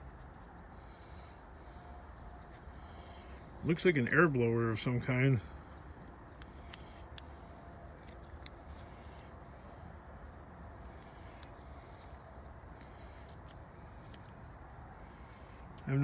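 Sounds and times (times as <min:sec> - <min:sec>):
low background noise: 0:00.0 - 0:16.0.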